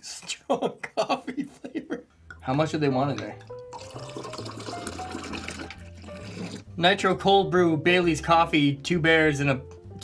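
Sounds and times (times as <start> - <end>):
coffee pouring into a glass jar: 3.1 - 6.7.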